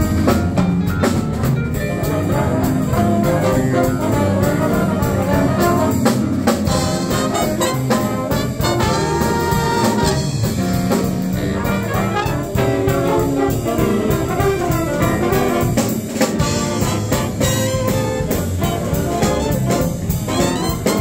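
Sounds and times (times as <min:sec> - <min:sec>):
jazz big band playing swing: 0:00.0 - 0:21.0.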